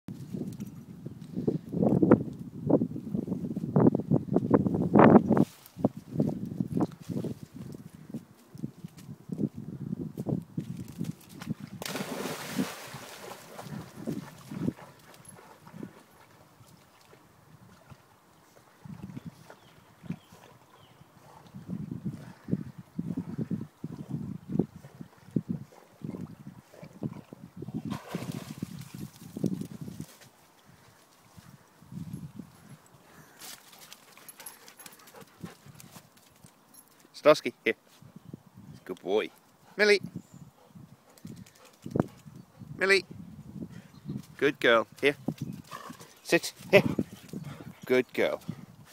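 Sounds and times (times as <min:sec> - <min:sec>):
big splash of water: 0:11.8 - 0:13.8, 0:27.9 - 0:28.9
faint water noise: 0:11.8 - 0:36.9.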